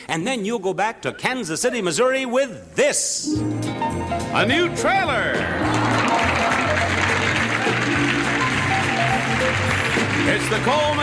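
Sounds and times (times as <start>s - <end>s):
upbeat game show music: 3.0s - 11.0s.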